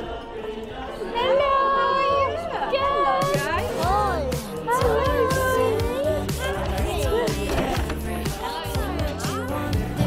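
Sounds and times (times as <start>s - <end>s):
pop music with beat and bass: 3.1s - 10.0s.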